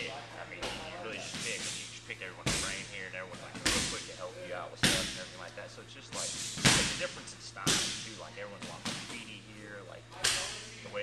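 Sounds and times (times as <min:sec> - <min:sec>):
man's voice: 0:00.0 - 0:06.3.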